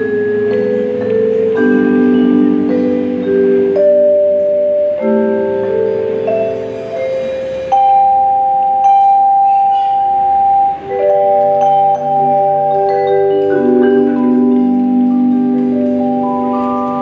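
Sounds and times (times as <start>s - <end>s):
marimbas playing held chords: 0.0s - 17.0s.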